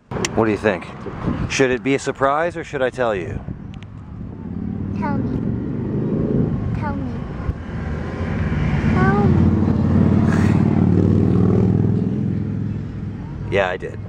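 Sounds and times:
vehicle engine droning: 0.0 - 14.0.

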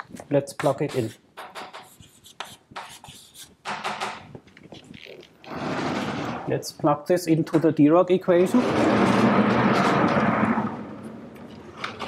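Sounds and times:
chalkboard panels rolling: 5.4 - 6.5, 8.5 - 12.0.

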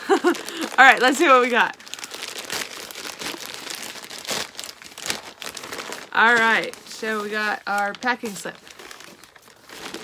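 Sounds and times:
plastic mailer bag crinkling: 0.0 - 10.0.

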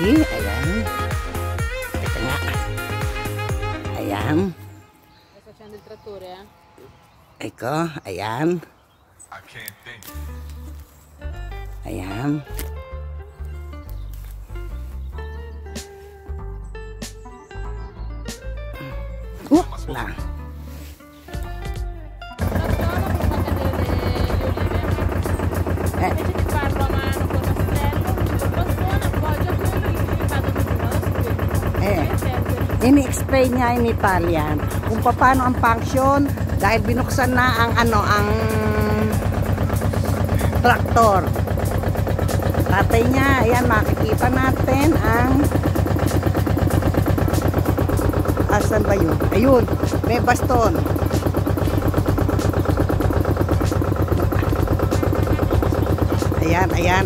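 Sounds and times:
people talking: 0.0 - 0.9, 2.0 - 2.6, 3.9 - 4.6, 5.4 - 6.5, 11.8 - 12.4, 22.4 - 39.2, 40.3 - 41.4, 42.7 - 45.5, 48.5 - 50.8, 56.4 - 57.0
tractor engine running: 0.0 - 4.8, 10.1 - 15.9, 21.3 - 57.0
fast mechanical clatter: 22.4 - 57.0.

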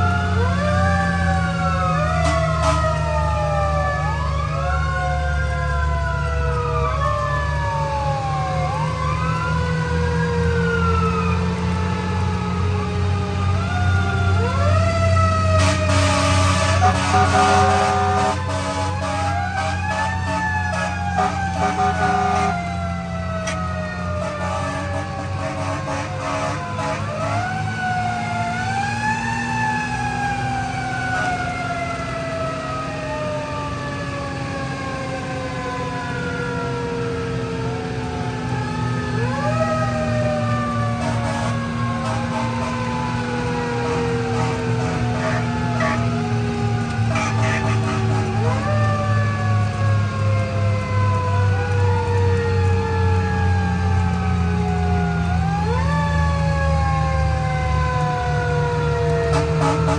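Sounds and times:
mechanical siren wailing: 0.0 - 59.9
truck engine rumble: 0.0 - 59.9.

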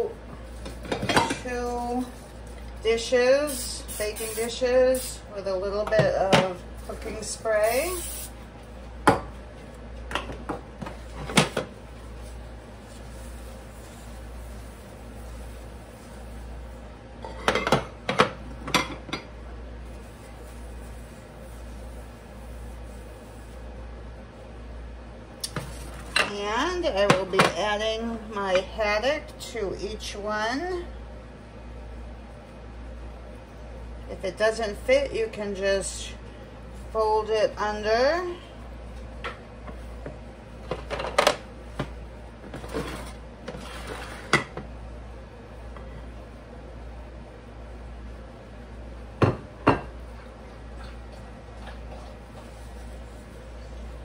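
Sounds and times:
baking dishes knocking on countertop: 49.2 - 49.9.

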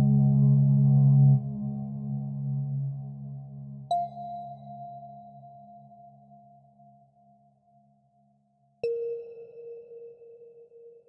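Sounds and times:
low drone: 0.0 - 3.9.

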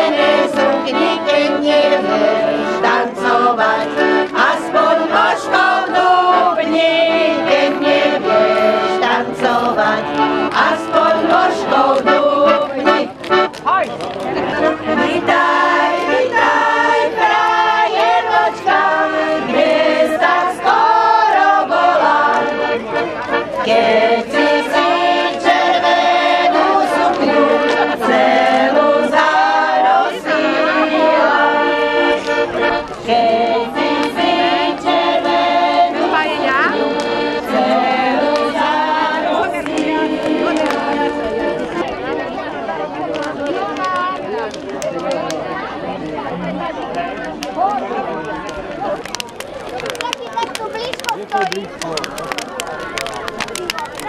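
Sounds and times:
women singing together: 0.0 - 13.2, 14.9 - 41.8
piano accordion: 0.0 - 41.9.

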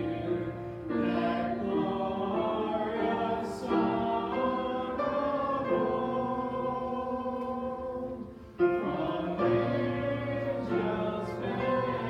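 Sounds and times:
congregation singing a carol: 0.0 - 12.0.

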